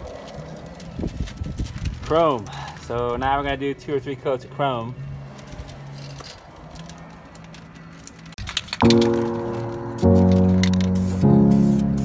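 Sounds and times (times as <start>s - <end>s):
background music chords: 8.8s - 12.0s.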